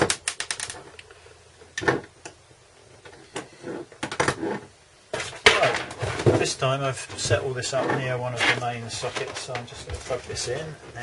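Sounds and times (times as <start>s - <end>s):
scraping rustle: 3.6s - 11.0s.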